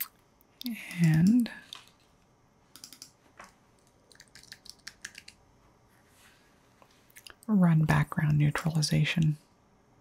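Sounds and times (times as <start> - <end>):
computer keyboard and mouse clicks: 0.6 - 2.0, 2.7 - 5.4.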